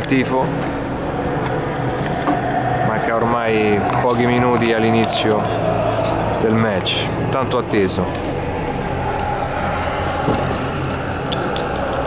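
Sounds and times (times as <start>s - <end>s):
football supporters chanting: 0.9s - 7.3s, 8.2s - 12.0s.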